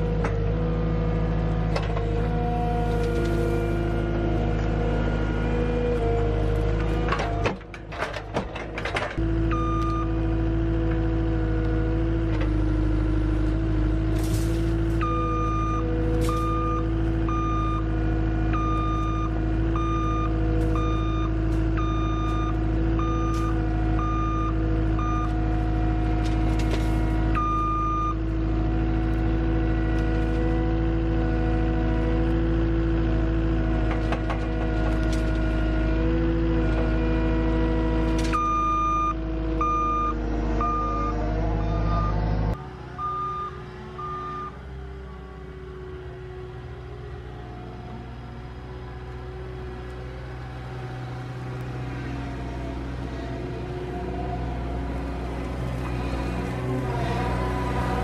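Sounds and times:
diesel engine running: 0.0 - 58.0
back-up alarm beeping: 18.6 - 25.4, 27.4 - 28.2, 38.4 - 41.2, 41.8 - 42.2, 43.0 - 44.6.

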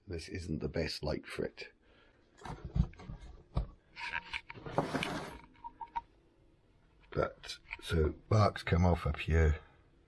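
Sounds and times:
wood rubbing and scraping: 2.4 - 5.6.

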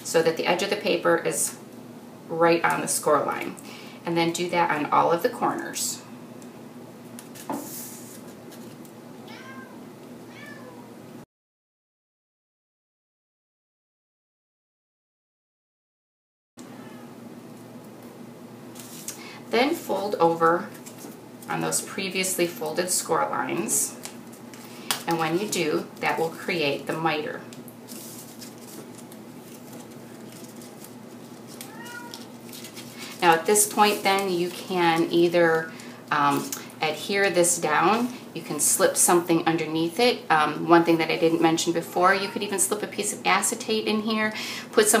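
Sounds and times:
paper rustling and folding: 7.2 - 8.9, 18.7 - 21.7, 27.8 - 36.5
cat meowing: 9.2 - 10.9, 31.6 - 32.3.

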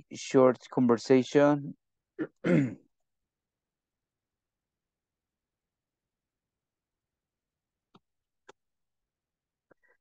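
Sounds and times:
man clearing throat: 2.2 - 2.9.

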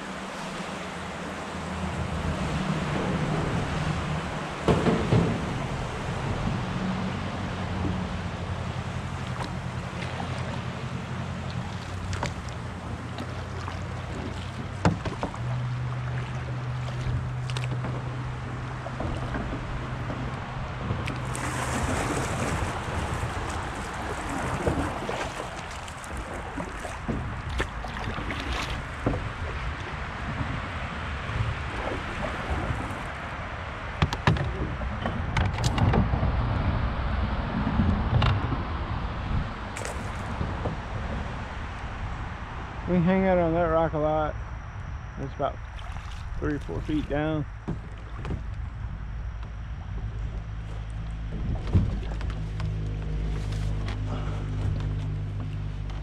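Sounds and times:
river water rushing and lapping: 0.0 - 43.9, 45.2 - 56.0
steady low hum: 36.2 - 56.0.

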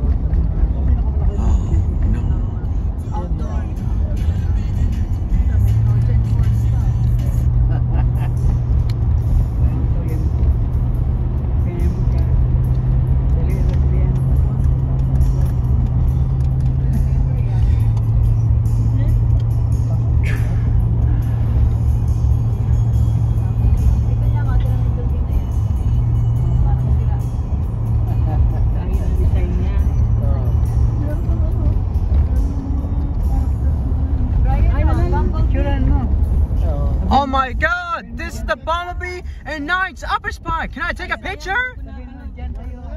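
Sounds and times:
car engine and road drone: 0.0 - 42.9.

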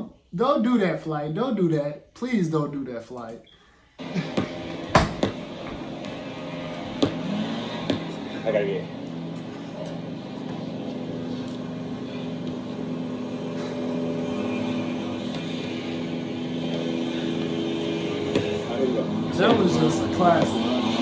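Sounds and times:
leaf blower engine running: 4.0 - 21.0.

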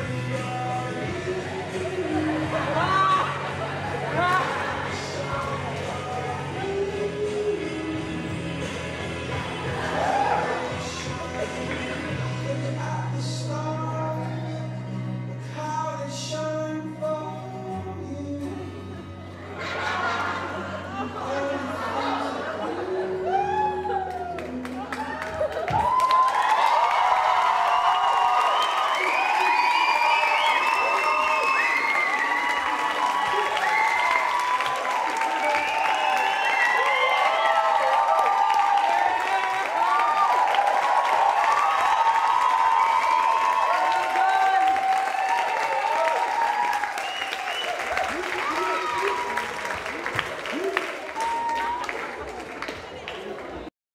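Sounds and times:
audience applauding: 1.2 - 6.8, 9.2 - 13.0, 21.8 - 53.7
whoops and cheers: 9.8 - 10.8, 23.0 - 52.7.

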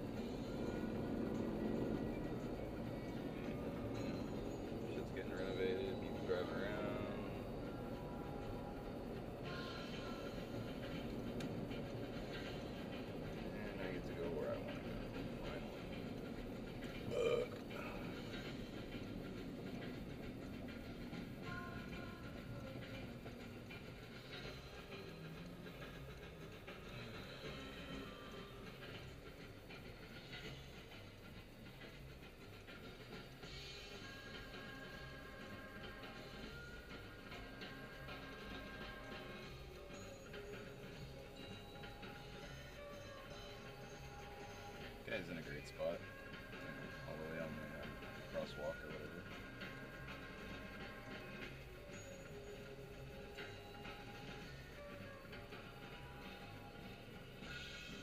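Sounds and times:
faint music: 0.0 - 58.0
faint voice: 17.1 - 18.2.

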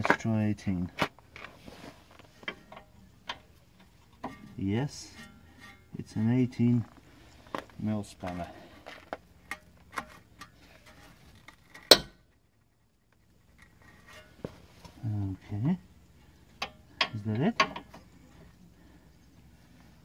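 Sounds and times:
spanner clanking on metal bolt: 16.6 - 17.9.

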